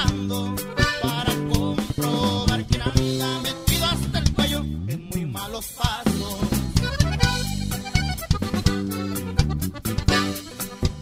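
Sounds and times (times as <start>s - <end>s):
drums steady beat: 0.0s - 11.0s
sustained bass notes: 0.0s - 11.0s.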